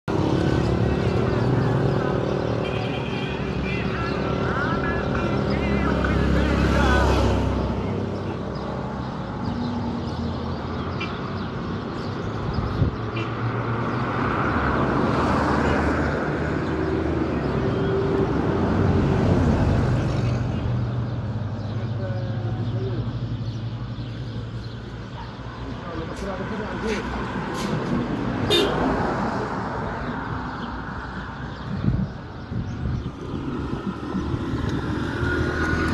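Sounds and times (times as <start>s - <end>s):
vehicles passing: 0.0s - 35.9s
people talking: 25.6s - 27.2s.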